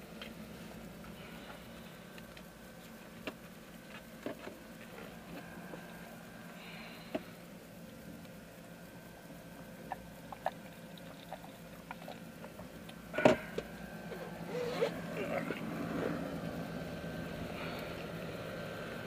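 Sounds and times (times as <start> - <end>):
outdoor noise: 0.0 - 19.0.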